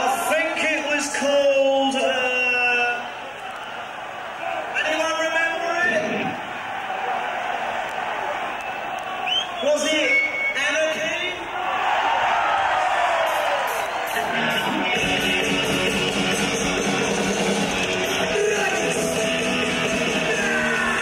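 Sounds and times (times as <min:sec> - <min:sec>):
crowd shouting and cheering: 0:00.0 - 0:21.0
drums: 0:13.1 - 0:21.0
distorted electric guitar chords: 0:14.1 - 0:21.0.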